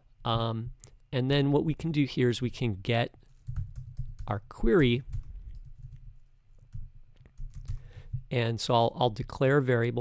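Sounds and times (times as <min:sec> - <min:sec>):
computer keyboard typing: 0:03.3 - 0:06.0, 0:06.6 - 0:08.2.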